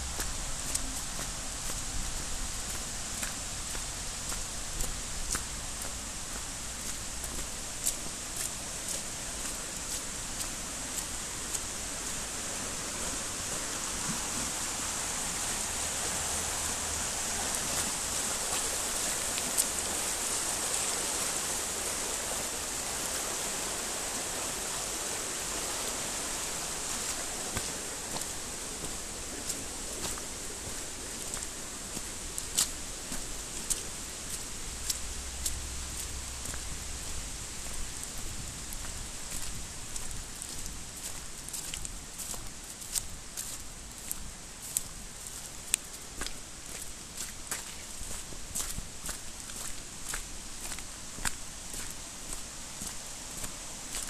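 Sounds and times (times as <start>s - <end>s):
stream rushing: 0.0s - 54.0s.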